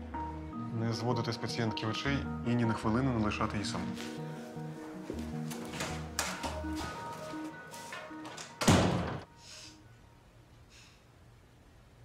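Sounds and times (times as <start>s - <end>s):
soft plucked background music: 0.0s - 9.1s
wooden door shutting: 7.9s - 9.3s.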